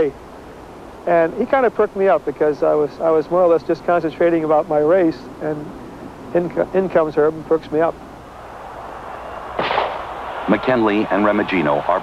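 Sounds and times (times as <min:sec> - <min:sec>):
crowd noise: 0:08.2 - 0:12.0
starter's pistol crack: 0:09.6 - 0:10.1.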